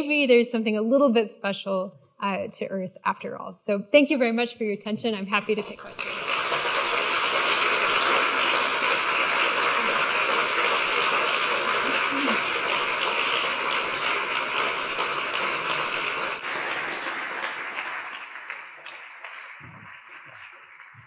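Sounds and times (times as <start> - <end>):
audience applauding: 5.6 - 21.0.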